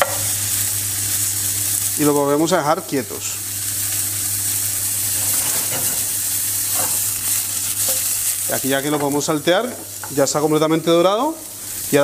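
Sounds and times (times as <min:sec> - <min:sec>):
mushrooms sizzling in a frying pan: 0:00.0 - 0:12.0.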